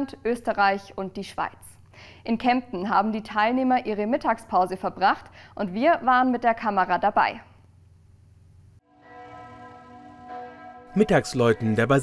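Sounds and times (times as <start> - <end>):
church bells ringing: 8.9 - 12.0.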